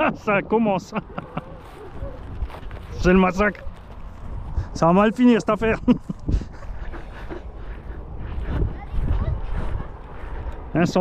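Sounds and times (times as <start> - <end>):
wind rumbling on microphone: 0.0 - 11.0
faint voices: 1.0 - 4.0, 6.6 - 11.0.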